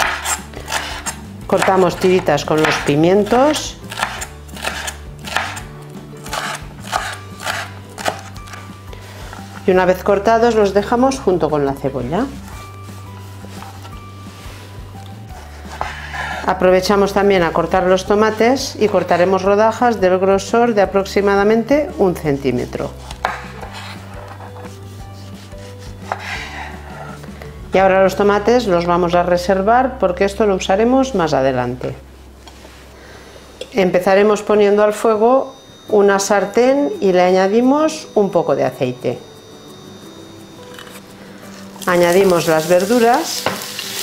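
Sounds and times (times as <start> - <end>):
knife slicing on cutting board: 0.0 - 1.2, 3.9 - 5.6, 6.2 - 8.3
knife slicing tomato: 0.0 - 8.7, 22.9 - 26.6
background music: 0.0 - 44.0.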